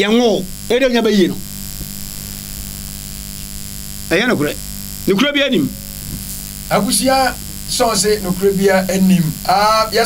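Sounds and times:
man speaking: 0.0 - 1.4, 4.1 - 5.9, 6.7 - 10.0
electrical mains hum: 0.0 - 10.0.

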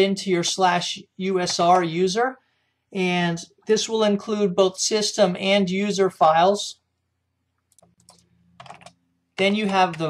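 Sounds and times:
computer keyboard typing: 7.7 - 10.0.

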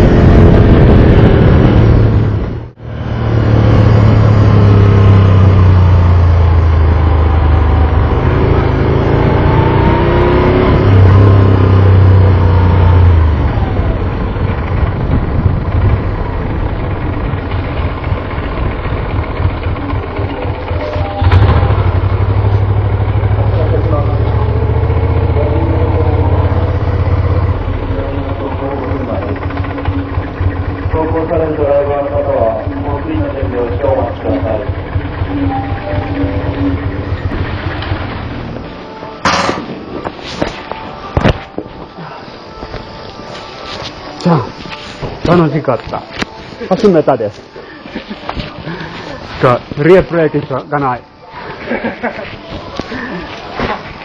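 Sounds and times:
motorcycle engine running: 0.0 - 41.5.

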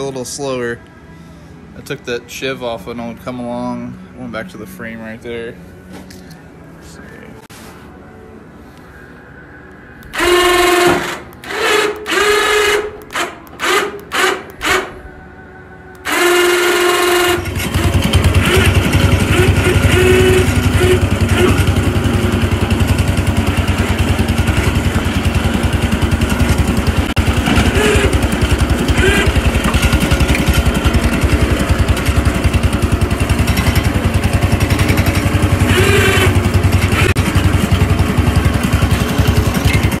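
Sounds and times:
tractor engine starting and running: 10.0 - 15.0, 15.9 - 40.0.

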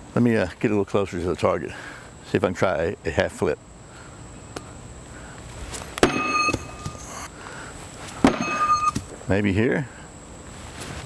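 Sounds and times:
sharp metallic clank: 6.0 - 7.3, 8.2 - 9.0.

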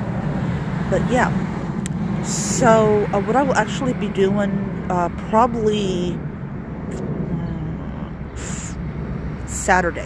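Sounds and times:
street noise rumble: 0.0 - 10.0.

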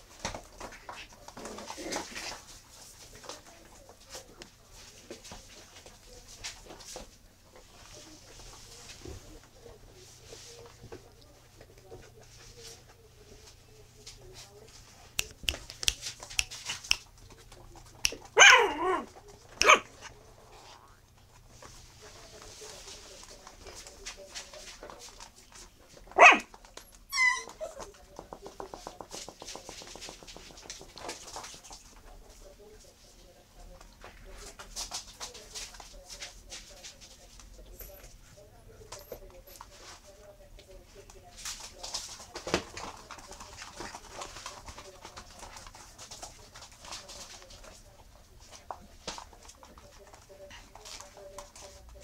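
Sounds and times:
puppies scuffling: 0.0 - 52.0
puppies grumbling: 17.5 - 20.8
puppy yipping: 18.1 - 19.9, 26.2 - 26.5, 27.1 - 27.8.

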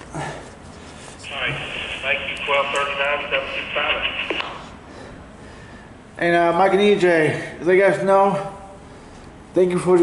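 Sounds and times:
voice over two-way radio: 1.2 - 4.7.

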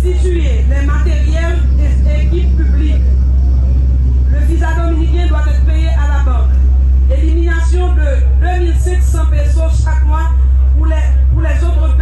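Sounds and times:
woman speaking into microphone: 0.0 - 3.2, 4.3 - 12.0
loud low hum: 0.0 - 12.0.

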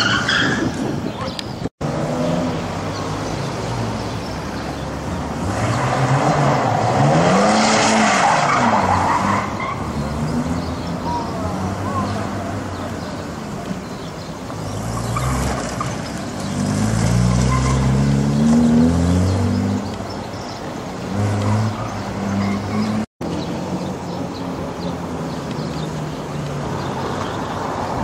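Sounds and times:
car engine revving: 1.8 - 13.0, 14.5 - 20.2, 20.9 - 23.1.

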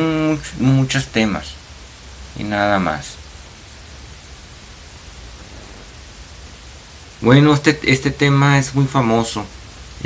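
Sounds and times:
steady hiss: 0.0 - 10.0
low hum: 3.4 - 7.3.

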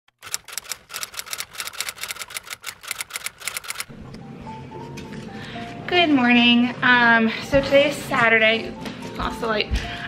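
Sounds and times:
rapid keyboard typing: 0.1 - 3.9.

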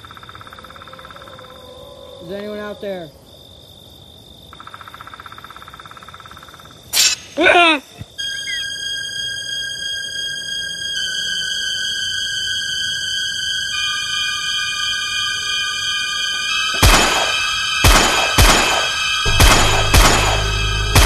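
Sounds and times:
crickets trilling: 0.0 - 21.0
shriek falling in pitch: 8.2 - 17.8, 18.8 - 21.0
eerie horror synth music: 8.2 - 21.0
sudden loud crack: 16.8 - 21.0.

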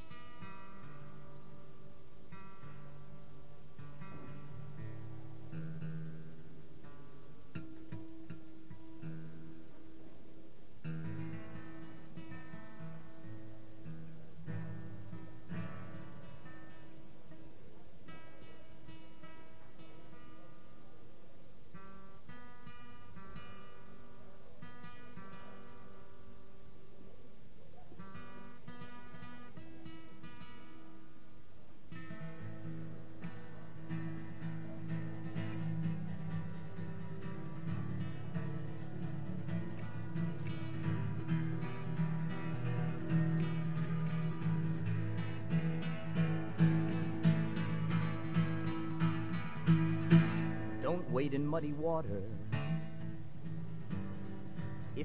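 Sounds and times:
acoustic guitar: 0.0 - 55.0.

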